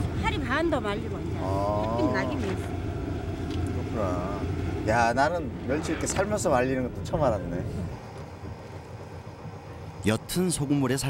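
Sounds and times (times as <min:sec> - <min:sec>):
water bubbling at a rolling boil: 0:00.0 - 0:11.0.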